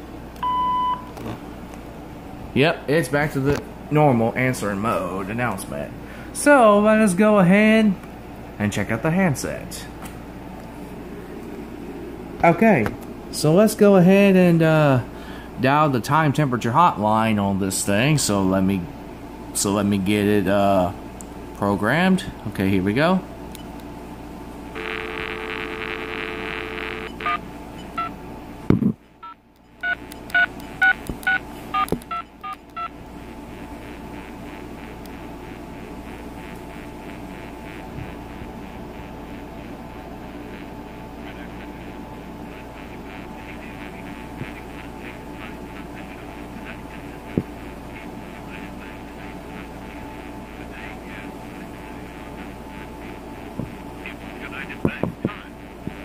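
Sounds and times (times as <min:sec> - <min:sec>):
faint open line hum: 0:00.0 - 0:56.0
phone dial tone: 0:24.8 - 0:28.2, 0:29.2 - 0:45.0.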